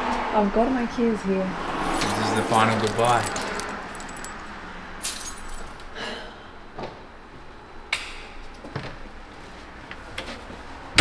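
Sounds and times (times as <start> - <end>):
keys jingling: 1.8 - 4.4, 5.0 - 5.8.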